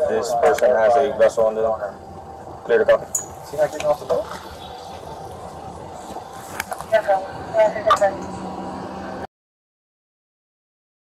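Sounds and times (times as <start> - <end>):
indistinct voices talking: 0.0 - 9.3
steady background noise: 0.0 - 9.3.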